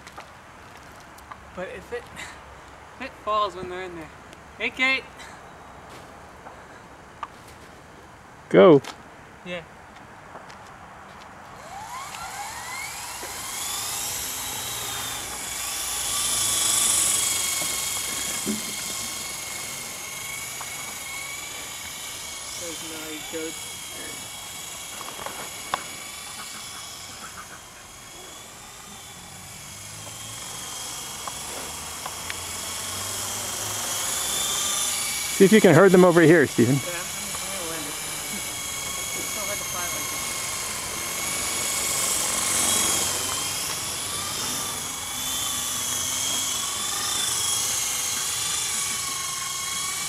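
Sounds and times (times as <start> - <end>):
rc helicopter whine: 0.0 - 5.6, 9.4 - 50.0.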